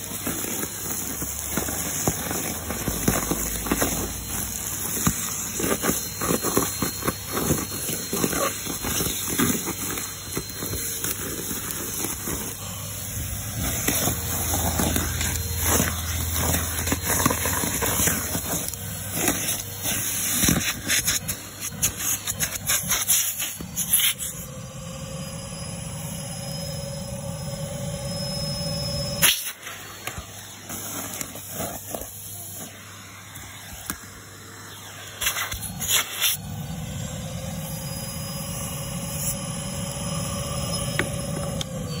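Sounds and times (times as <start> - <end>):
debris rattling through hose: 0.0 - 24.3
vacuum cleaner running: 0.0 - 42.0.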